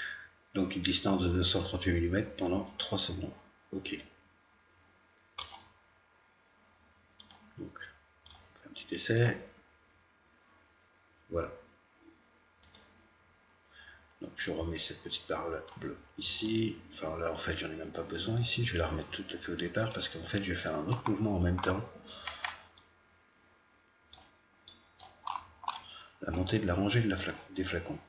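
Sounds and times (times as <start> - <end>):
computer mouse clicks: 5.4 - 5.8, 7.2 - 7.6, 8.2 - 8.5, 12.6 - 13.0, 19.9 - 22.9, 24.1 - 26.5.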